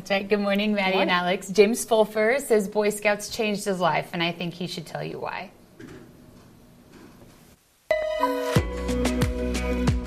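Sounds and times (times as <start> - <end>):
background music with sustained notes: 7.9 - 10.0.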